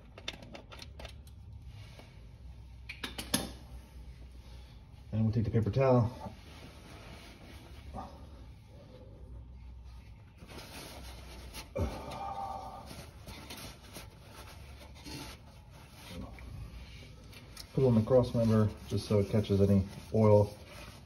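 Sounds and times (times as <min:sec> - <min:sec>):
paper towel rustling: 0:09.6 - 0:21.0.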